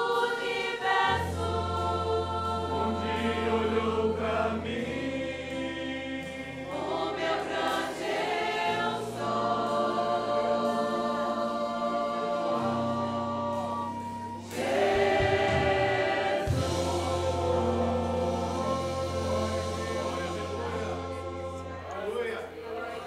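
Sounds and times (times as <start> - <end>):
congregation singing a hymn: 0.0 - 23.0
instrumental accompaniment: 0.0 - 23.0.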